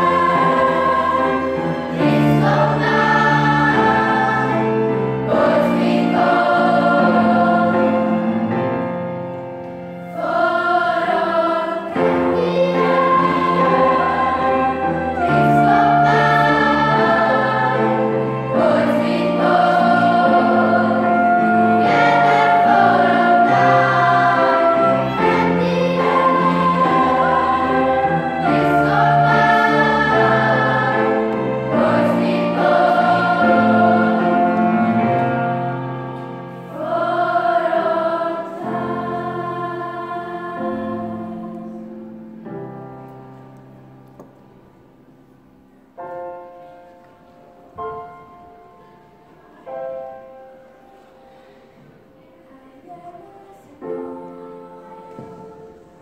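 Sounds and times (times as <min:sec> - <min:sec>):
choir singing in harmony: 0:00.0 - 0:44.3, 0:47.7 - 0:56.0.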